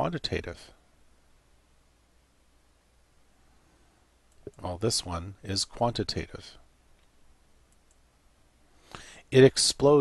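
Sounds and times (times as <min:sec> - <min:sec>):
computer mouse clicks: 0:07.7 - 0:08.0.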